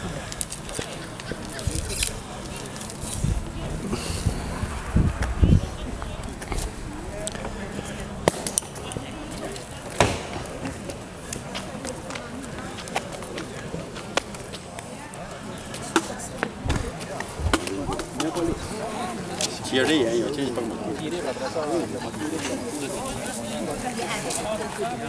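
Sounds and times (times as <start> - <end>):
people chattering: 0.0 - 25.0.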